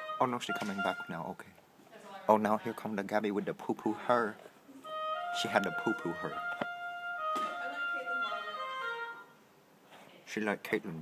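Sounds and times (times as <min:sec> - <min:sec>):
wind instruments holding notes: 0:00.0 - 0:01.3, 0:04.0 - 0:09.4.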